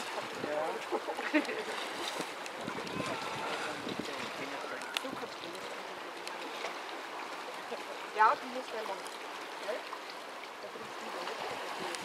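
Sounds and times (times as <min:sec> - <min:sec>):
wind on microphone: 0:00.0 - 0:00.8, 0:02.5 - 0:05.4
sea water washing against rocks: 0:00.0 - 0:12.0.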